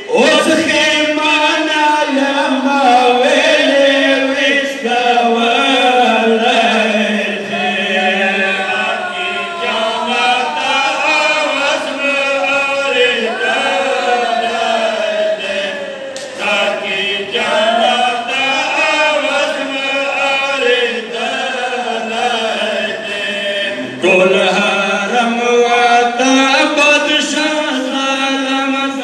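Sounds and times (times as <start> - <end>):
men chanting a lament: 0.0 - 29.0.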